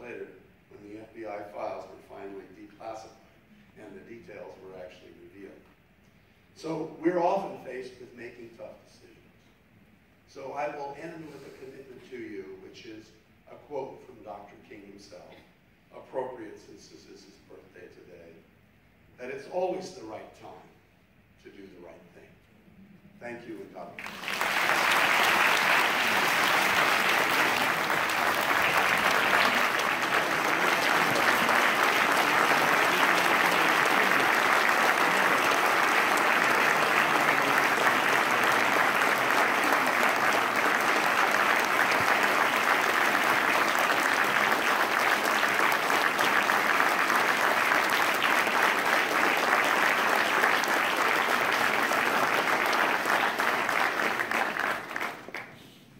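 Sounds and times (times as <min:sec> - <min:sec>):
audience applauding: 0:24.0 - 0:55.6.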